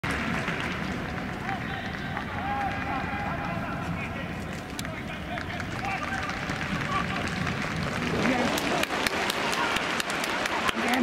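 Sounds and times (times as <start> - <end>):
hum of spectators: 0.0 - 11.0.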